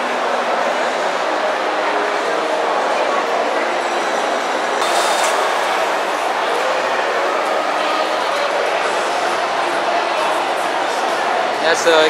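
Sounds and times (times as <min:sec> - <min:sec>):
crowd voices echoing: 0:01.4 - 0:12.0
brief bright hiss: 0:04.8 - 0:06.5
footsteps: 0:04.8 - 0:07.0.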